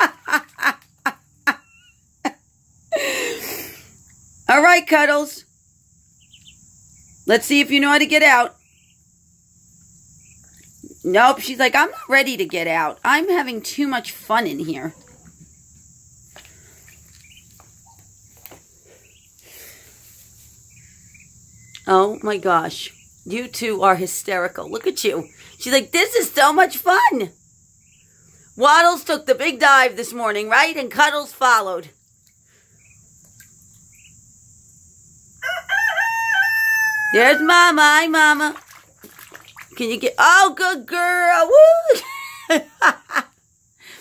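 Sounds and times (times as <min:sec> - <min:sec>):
crickets trilling: 0:00.0 - 0:44.0
water splashes and drips: 0:10.4 - 0:13.0, 0:33.2 - 0:33.9, 0:38.0 - 0:40.1
rooster crowing: 0:35.4 - 0:37.5.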